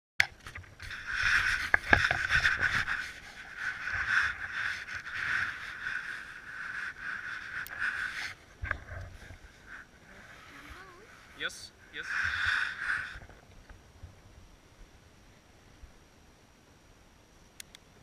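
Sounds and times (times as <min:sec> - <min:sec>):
rustling on camera: 0:00.3 - 0:14.2.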